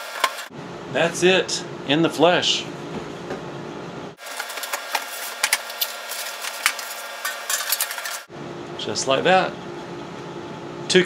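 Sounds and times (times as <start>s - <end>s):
cardboard rustling: 4.2s - 8.2s
plastic wrapping crinkling: 4.2s - 8.3s.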